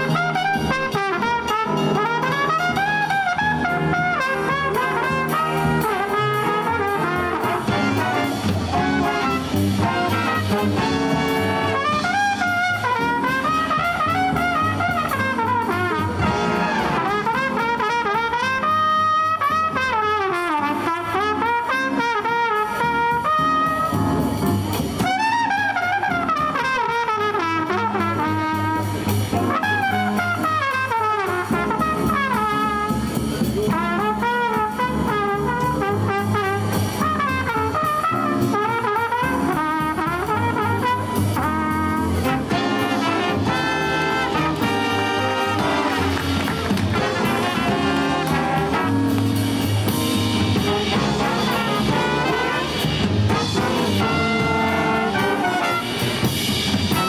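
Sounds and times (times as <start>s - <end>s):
jazz big band playing: 0.0s - 57.0s
trumpet solo: 0.0s - 57.0s.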